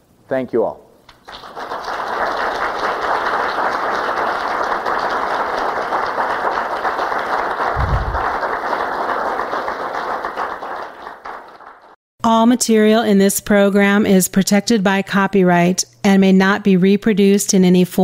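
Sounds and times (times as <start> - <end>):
audience applause: 1.2 - 12.0
low bump: 7.7 - 8.4.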